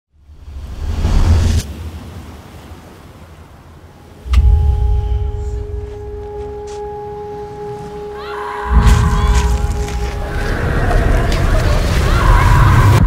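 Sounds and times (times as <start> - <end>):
low rumble: 4.2 - 13.0
deep boom: 4.3 - 6.6, 8.7 - 10.8
bell-like ringing tone: 4.3 - 10.4.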